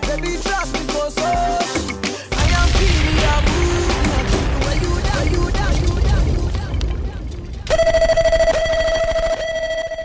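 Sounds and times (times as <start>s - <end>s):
sustained synth tone: 7.7s - 10.0s.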